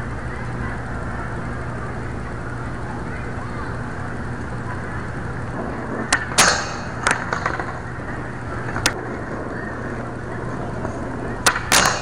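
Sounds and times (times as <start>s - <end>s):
skateboard wheels rolling on concrete: 0.0s - 12.0s
skateboard clacks on metal bar: 6.0s - 7.9s, 11.4s - 12.0s.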